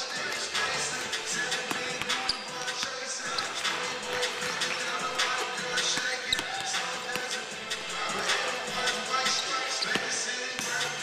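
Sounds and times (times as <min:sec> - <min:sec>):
steady music: 0:00.0 - 0:11.0
basketballs bouncing on hardwood: 0:01.5 - 0:07.4, 0:08.8 - 0:10.9.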